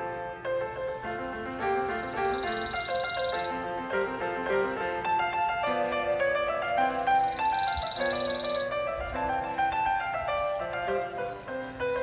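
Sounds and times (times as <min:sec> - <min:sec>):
piano music: 0:00.0 - 0:12.0
bird trilling: 0:00.9 - 0:12.0.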